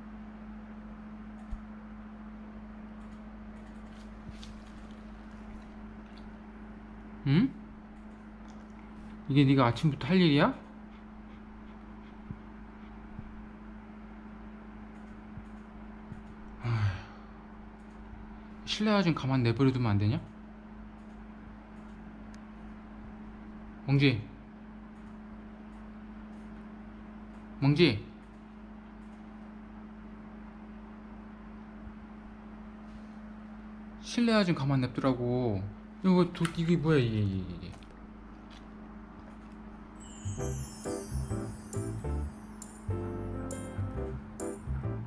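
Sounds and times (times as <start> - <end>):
low room hum: 0.0 - 45.0
breathy sigh: 16.6 - 17.5.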